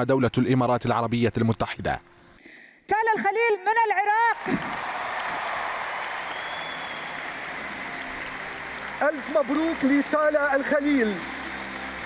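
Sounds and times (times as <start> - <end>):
audience applauding: 4.4 - 12.0.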